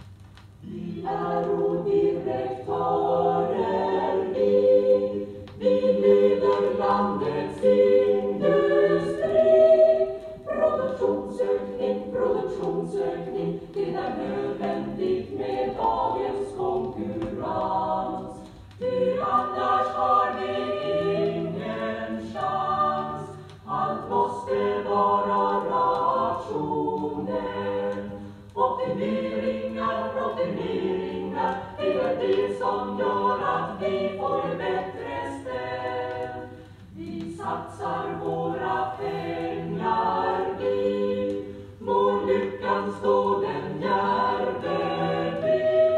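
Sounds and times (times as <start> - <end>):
choir singing unaccompanied: 0.6 - 45.9.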